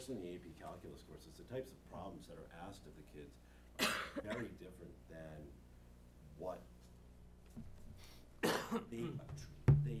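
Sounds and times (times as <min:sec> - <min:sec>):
person coughing: 0:03.8 - 0:04.6, 0:08.4 - 0:09.2.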